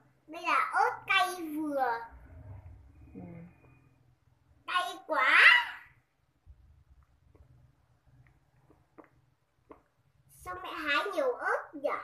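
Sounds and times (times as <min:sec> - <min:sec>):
faint low rumble: 0:02.0 - 0:04.6.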